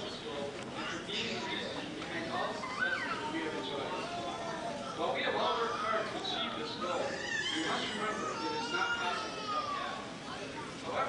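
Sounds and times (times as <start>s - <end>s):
speech in a large hall: 0.0s - 11.0s.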